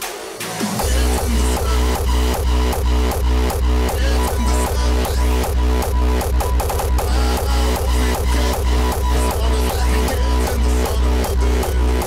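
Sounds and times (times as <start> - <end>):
electronic dance music: 0.0 - 12.0
deep bass line: 0.5 - 12.0
four-on-the-floor kick drum: 0.7 - 12.0.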